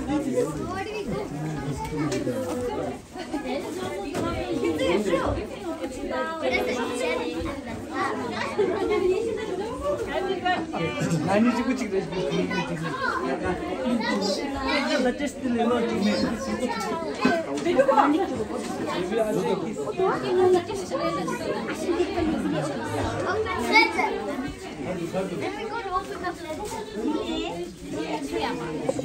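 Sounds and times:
people chattering: 0.0s - 29.0s.

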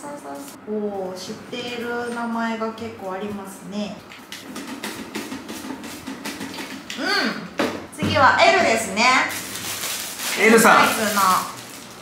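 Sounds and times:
paper slips rattling in a box: 9.3s - 12.0s.

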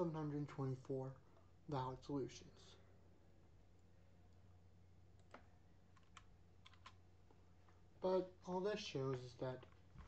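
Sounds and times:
low steady hum: 0.0s - 10.0s
keyboard keystrokes: 5.2s - 7.0s.

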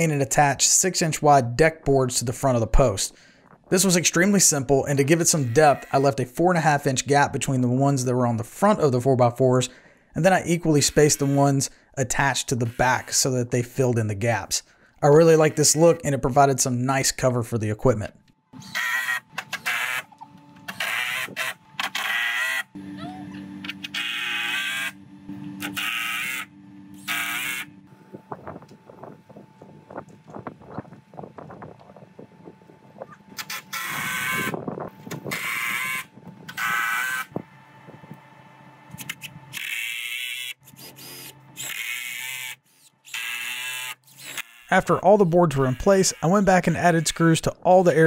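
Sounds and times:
steady hum: 0.1s - 39.8s.

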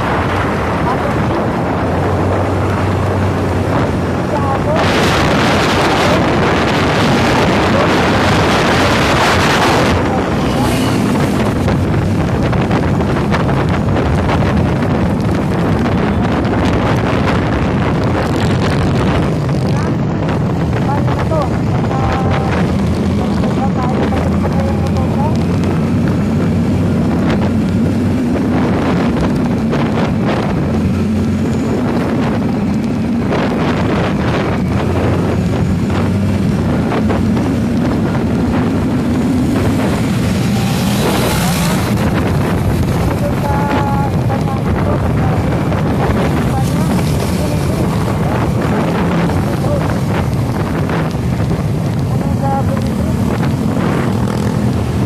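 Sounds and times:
vehicle engine running: 0.0s - 55.0s
wind rushing on microphone: 0.0s - 55.0s.

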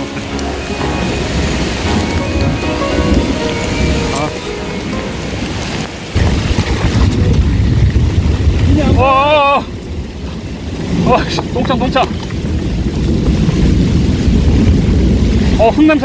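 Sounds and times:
low rumble: 0.0s - 10.7s
heavy rain pouring: 0.0s - 16.0s.

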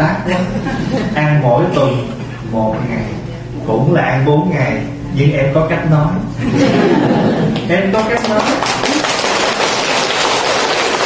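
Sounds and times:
audience applauding: 8.0s - 11.0s.

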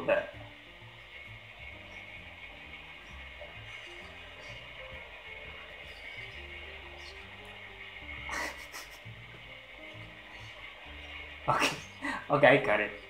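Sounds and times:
slow sustained music: 0.0s - 13.0s
burst of laughter: 8.3s - 9.1s.

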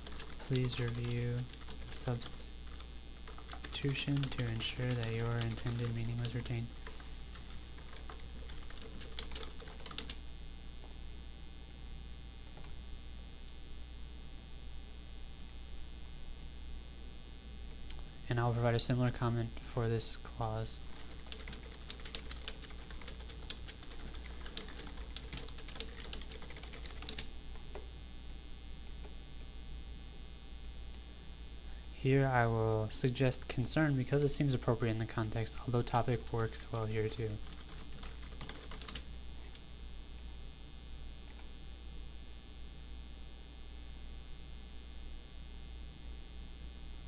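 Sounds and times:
computer keyboard keystrokes: 0.0s - 10.2s, 21.0s - 27.7s, 37.4s - 39.6s
low electrical hum: 0.0s - 47.0s.

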